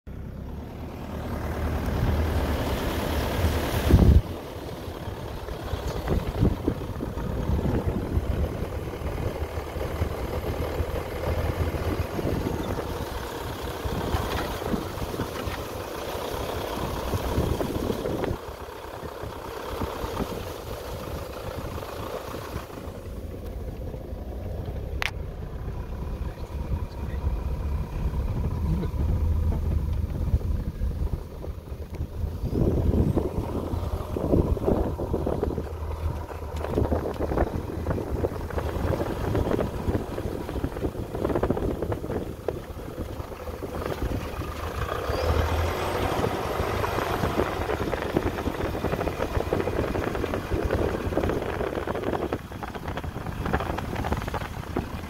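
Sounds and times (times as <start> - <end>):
vehicle engine on dirt track: 0.0 - 55.0.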